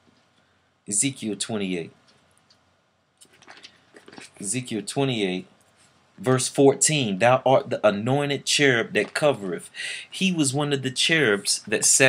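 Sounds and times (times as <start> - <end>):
paper pages rustling: 3.2 - 4.5.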